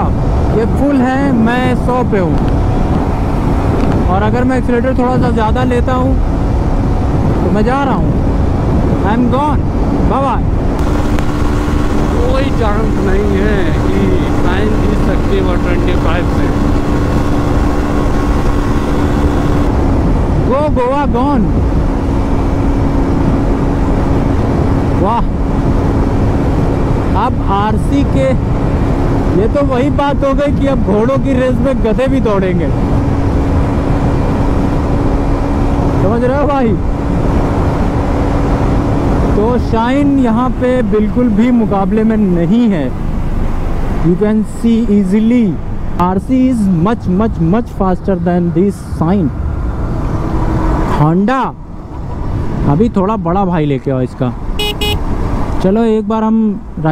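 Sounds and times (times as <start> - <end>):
motorcycle engine: 0.0 - 29.4, 54.4 - 55.6
wind rush on microphone: 0.0 - 56.9
motorcycle engine at high revs: 10.7 - 20.5
man's voice: 12.0 - 16.6.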